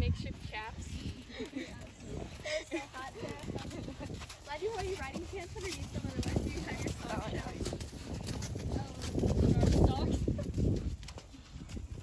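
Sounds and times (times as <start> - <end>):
horse hooves clip-clopping on dirt: 0.0 - 12.0.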